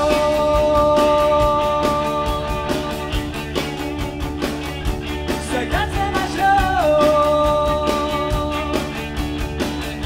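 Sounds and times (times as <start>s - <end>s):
lead vocal singing: 0.0s - 3.4s, 5.3s - 9.1s
drum kit: 0.0s - 10.0s
electric guitar: 0.0s - 10.0s.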